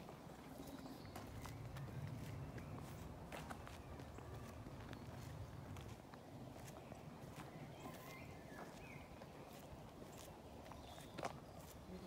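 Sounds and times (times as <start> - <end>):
footsteps on mulch: 0.0 - 12.0.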